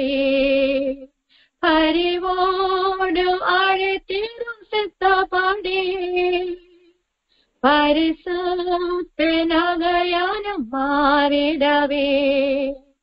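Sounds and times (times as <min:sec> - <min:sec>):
woman singing unaccompanied: 0:00.0 - 0:06.8, 0:07.6 - 0:13.0.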